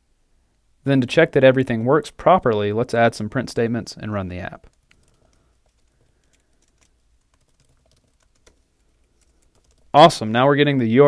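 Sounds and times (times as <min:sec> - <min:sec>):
keyboard typing: 0:04.6 - 0:10.0.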